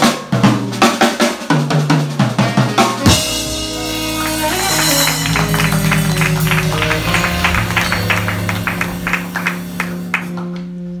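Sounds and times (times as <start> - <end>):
jazz band chord ringing out: 2.9 - 10.9
hand claps: 4.2 - 10.4.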